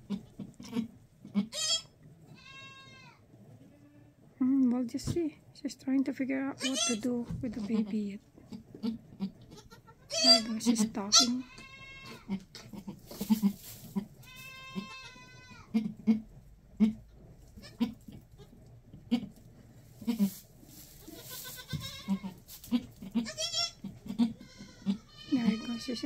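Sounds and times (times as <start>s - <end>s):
goat bleating: 0.1s - 4.1s, 6.6s - 7.0s, 8.8s - 17.0s, 17.6s - 19.3s, 20.0s - 20.4s, 21.0s - 26.0s.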